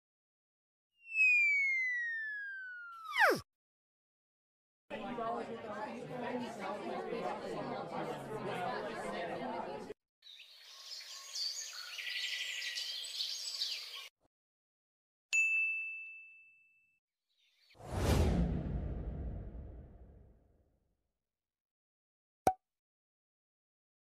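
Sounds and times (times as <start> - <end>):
voices chattering: 4.9 - 9.9
bell-like ding: 15.4 - 16.9.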